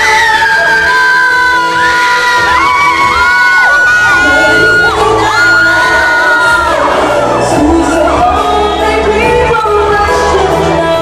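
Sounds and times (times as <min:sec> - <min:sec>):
backing music: 0:00.0 - 0:11.0
crowd screaming and cheering: 0:00.0 - 0:11.0
live pop singing: 0:00.0 - 0:11.0.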